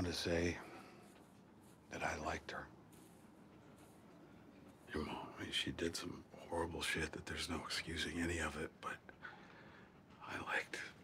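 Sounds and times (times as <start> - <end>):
soft whispered voice: 0.0 - 11.0.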